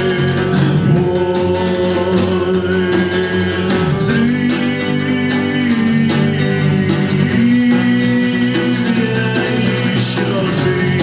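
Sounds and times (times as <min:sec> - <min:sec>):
guitar accompaniment: 0:00.0 - 0:11.0
man singing: 0:00.0 - 0:11.0.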